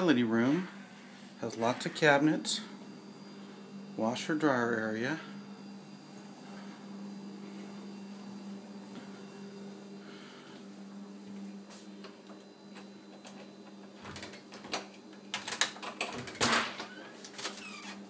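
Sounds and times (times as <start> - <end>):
low electrical hum: 0.0 - 18.0.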